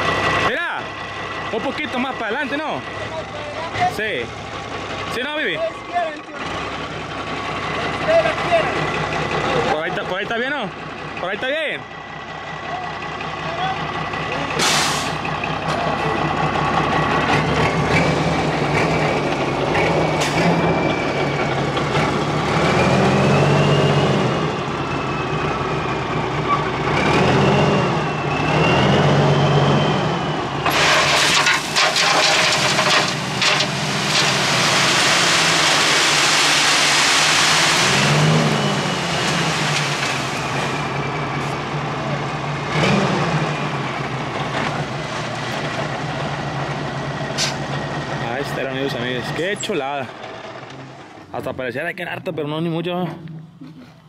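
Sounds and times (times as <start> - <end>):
truck engine revving: 0.0 - 54.0
sand sliding out rushing hiss: 33.6 - 38.3.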